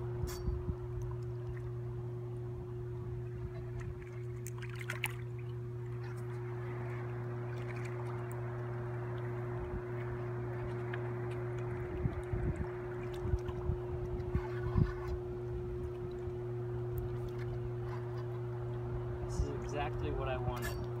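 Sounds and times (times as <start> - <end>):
low hum: 0.0 - 21.0.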